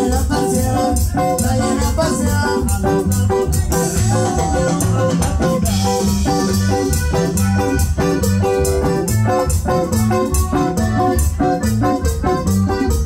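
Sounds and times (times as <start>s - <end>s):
live band playing dance music: 0.0s - 13.0s.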